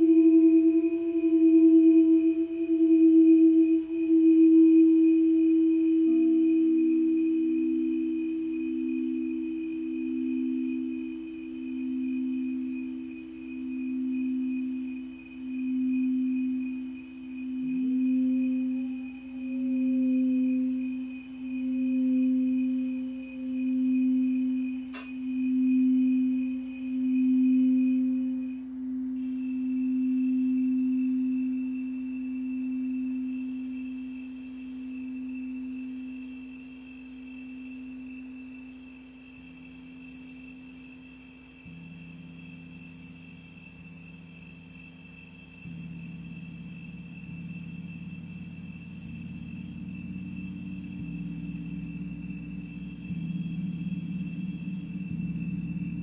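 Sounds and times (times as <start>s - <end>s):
higher singing bowl tone: 0.0s - 41.0s, 41.6s - 56.0s
singing bowl low tone: 0.0s - 56.0s.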